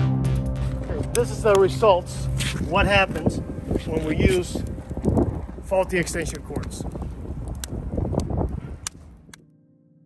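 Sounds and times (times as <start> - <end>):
wind buffeting microphone: 0.8 - 9.5.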